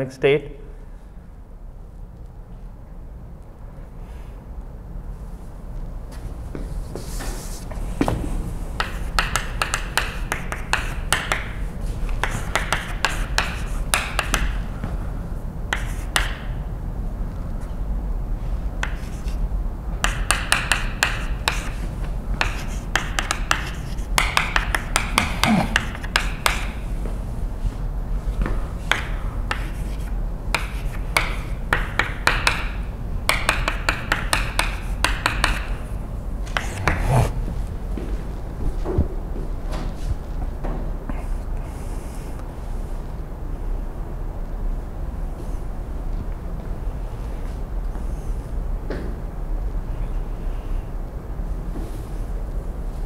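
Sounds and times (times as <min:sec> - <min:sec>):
low room hum: 0:00.0 - 0:53.0
chalk scratching: 0:08.8 - 0:14.6, 0:15.7 - 0:16.4, 0:18.8 - 0:19.4, 0:20.0 - 0:26.8, 0:28.9 - 0:32.6, 0:33.3 - 0:35.9, 0:36.5 - 0:37.4
chalk tapping on blackboard: 0:08.8 - 0:14.6, 0:15.7 - 0:16.6, 0:18.8 - 0:19.4, 0:20.0 - 0:26.8, 0:28.4 - 0:35.8, 0:36.5 - 0:37.3.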